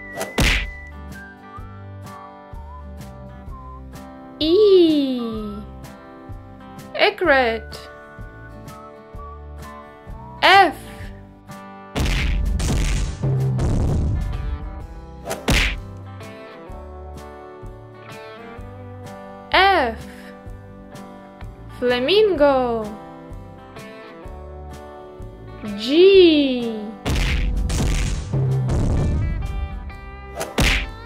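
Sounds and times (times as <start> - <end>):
light background music: 0.0 - 31.0
cartoon whack: 0.2 - 0.8, 12.0 - 14.2, 15.2 - 15.9, 27.0 - 29.3, 30.4 - 31.0.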